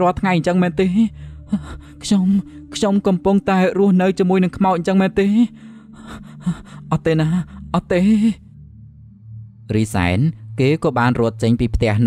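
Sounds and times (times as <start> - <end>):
person speaking: 0.0 - 8.6, 9.7 - 12.0
person gasping and panting: 5.6 - 7.7.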